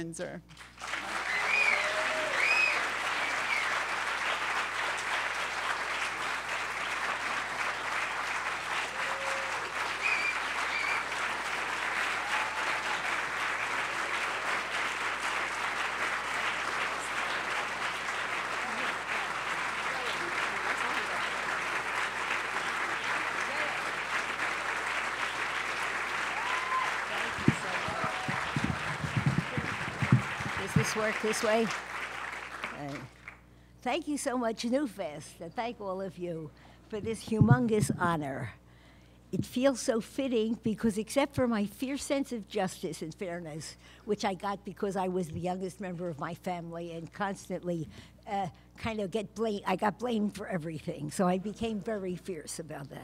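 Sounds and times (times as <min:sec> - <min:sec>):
audience applauding: 0:00.6 - 0:33.4
speech from stage: 0:27.1 - 0:31.8.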